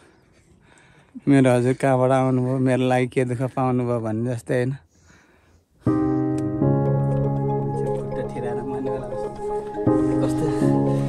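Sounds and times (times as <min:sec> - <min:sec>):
piano chords: 0:05.9 - 0:11.0.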